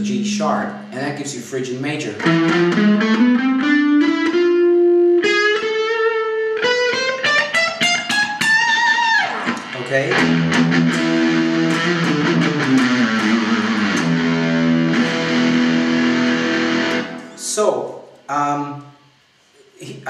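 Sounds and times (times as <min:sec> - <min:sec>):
electric guitar playing a scale: 0:00.0 - 0:17.4
guitar note sliding down: 0:02.2 - 0:17.4.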